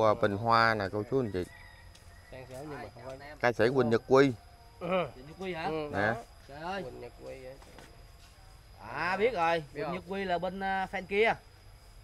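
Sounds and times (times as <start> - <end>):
man speaking: 0.0 - 1.5, 2.4 - 7.6, 8.8 - 11.4.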